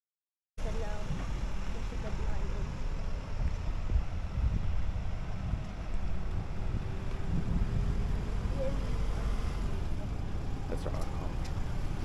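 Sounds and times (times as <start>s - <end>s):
wind rumbling on microphone: 0.6s - 12.0s.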